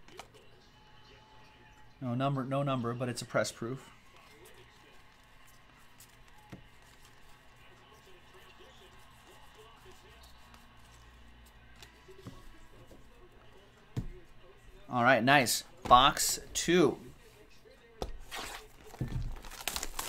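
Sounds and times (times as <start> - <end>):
trading cards handled and tapped: 5.2 - 7.3, 9.6 - 13.0.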